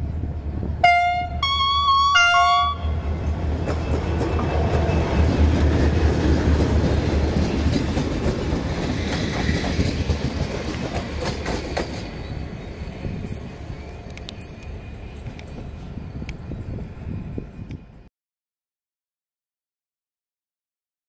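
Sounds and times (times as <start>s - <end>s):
locomotive horn: 0.8s - 3.1s.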